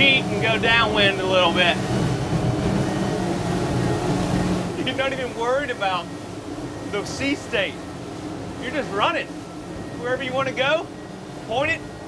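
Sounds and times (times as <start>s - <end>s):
boat engines droning: 0.0s - 12.0s
wind and water rushing: 0.0s - 12.0s.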